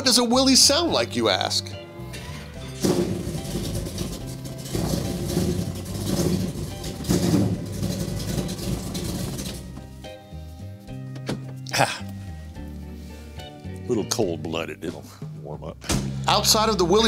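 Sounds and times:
engine starting and revving: 2.2s - 9.8s.

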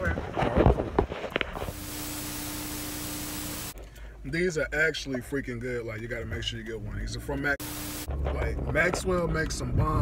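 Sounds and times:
tv static hiss: 1.7s - 3.8s, 7.6s - 8.1s.

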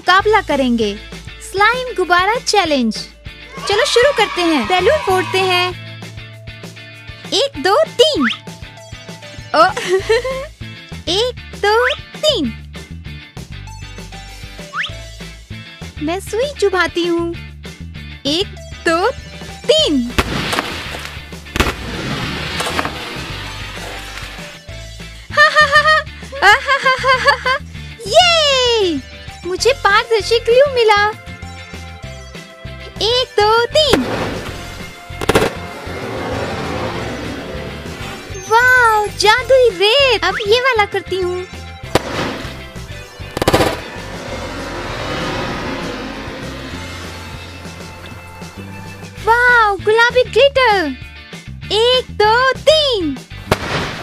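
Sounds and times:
background music: 0.0s - 54.0s
rapid rattle of sharp cracks: 20.2s - 24.4s, 34.1s - 35.7s, 42.0s - 42.7s, 43.3s - 44.2s
balloon bursting: 20.2s - 24.6s, 33.8s - 36.0s, 41.9s - 44.3s, 53.5s - 54.0s.

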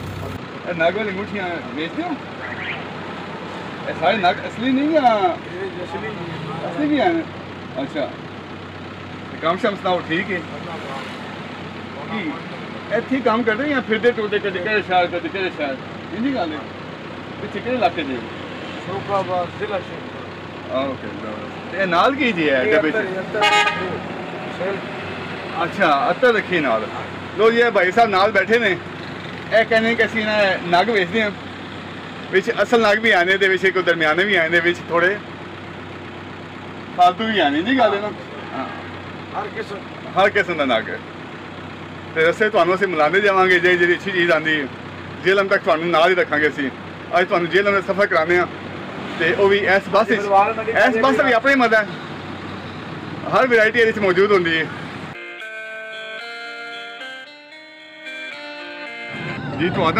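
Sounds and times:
bus engine and road noise: 0.0s - 59.9s.

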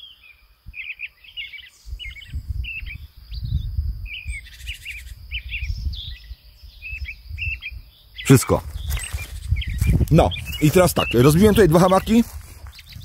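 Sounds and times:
songbirds chirping and trilling: 0.0s - 13.0s.

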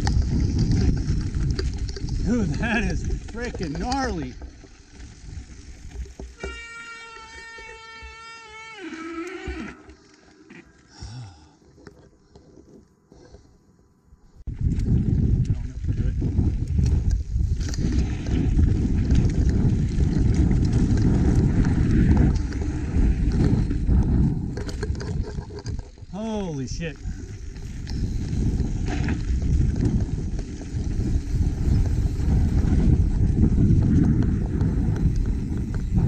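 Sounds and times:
wind rumble on microphone: 0.0s - 6.6s, 14.4s - 36.0s
bike rattling over rough ground: 0.0s - 8.6s, 14.5s - 36.0s.

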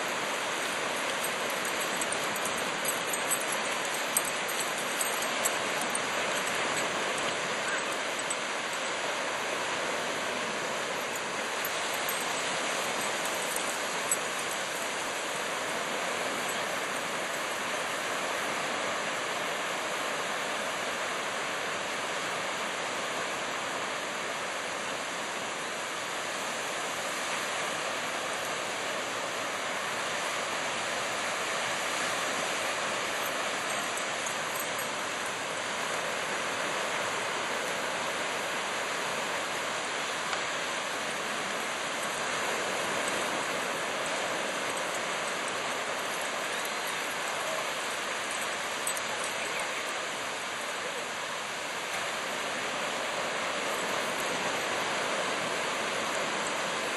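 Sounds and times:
ocean waves breaking on beach: 0.0s - 56.9s.

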